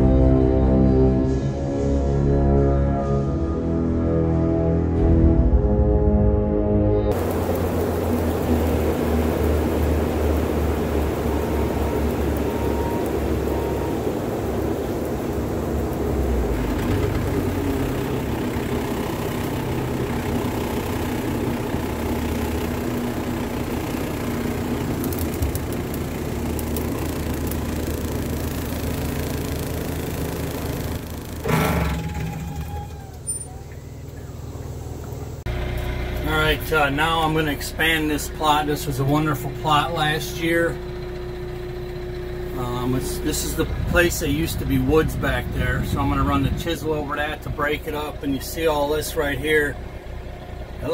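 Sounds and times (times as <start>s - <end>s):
diesel engine running: 0.0s - 50.9s
hydraulic brush cutter: 16.5s - 32.9s
loud clatter: 29.1s - 33.0s.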